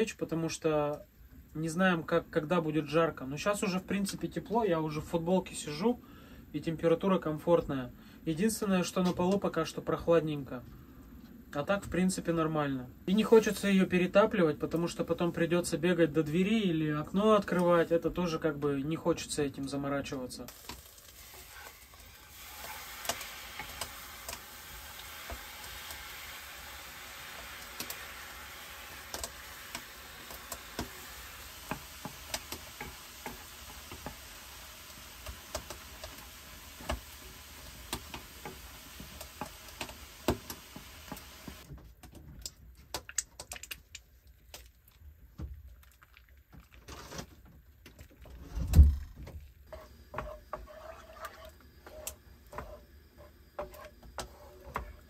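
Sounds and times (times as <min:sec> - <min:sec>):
food sizzling in a frying pan: 0:20.4 - 0:41.7, 0:49.7 - 0:55.0
liquid pouring into pan: 0:20.5 - 0:41.2
wooden spatula scraping a pan: 0:20.6 - 0:41.6, 0:49.7 - 0:55.0.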